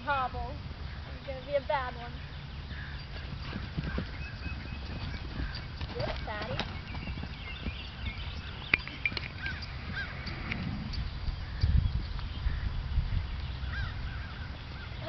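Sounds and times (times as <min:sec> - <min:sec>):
birds chirping: 0:00.0 - 0:15.0
wind rumble on microphone: 0:00.0 - 0:15.0
hooves on soft dirt: 0:02.2 - 0:12.7.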